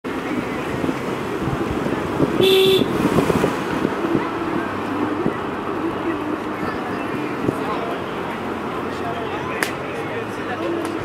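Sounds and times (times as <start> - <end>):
car driving: 0.0 - 11.0
car horn toot: 2.4 - 3.1.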